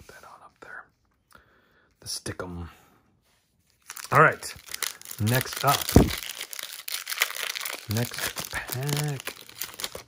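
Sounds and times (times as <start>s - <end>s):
foil wrapper crinkling: 3.8s - 10.0s.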